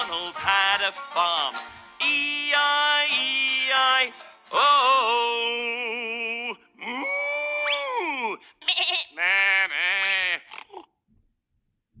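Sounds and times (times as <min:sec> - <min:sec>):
farm animal call: 0:08.6 - 0:10.8.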